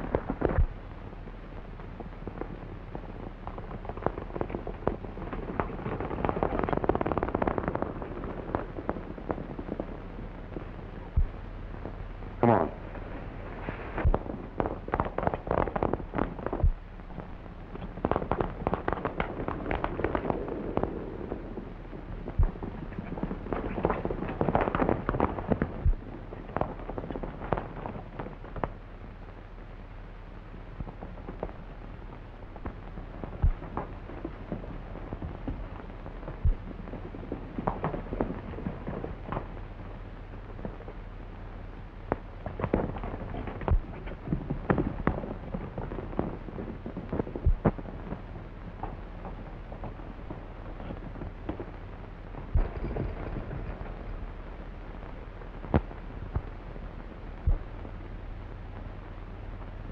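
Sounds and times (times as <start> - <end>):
faint low hum: 0.0 - 59.9
horses' hooves galloping: 3.4 - 11.4, 12.3 - 28.8, 30.8 - 41.1, 42.1 - 54.4.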